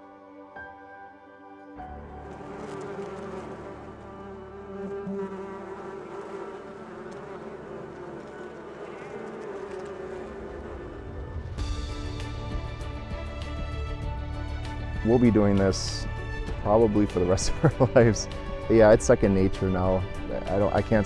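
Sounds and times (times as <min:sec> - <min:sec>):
soft music: 0:00.0 - 0:09.8, 0:11.5 - 0:21.0
bee colony buzzing: 0:02.0 - 0:21.0.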